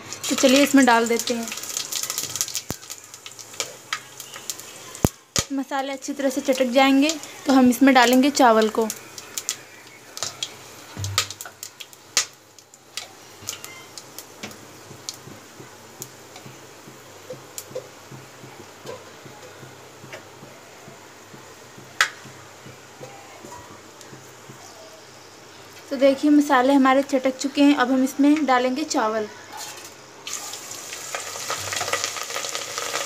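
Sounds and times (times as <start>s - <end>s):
spices crackling in hot oil: 0.0s - 29.0s, 29.6s - 33.0s.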